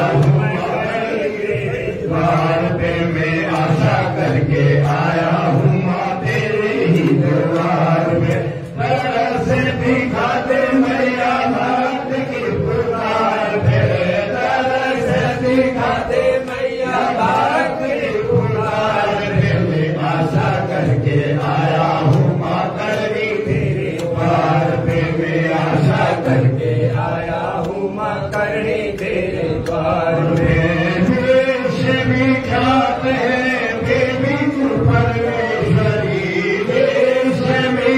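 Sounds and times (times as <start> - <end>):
voices chanting mantras: 0.0 - 37.9.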